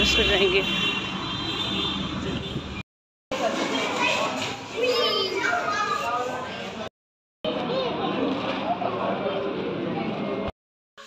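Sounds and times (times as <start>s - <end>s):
children talking and calling out: 3.4s - 6.9s, 7.5s - 10.5s.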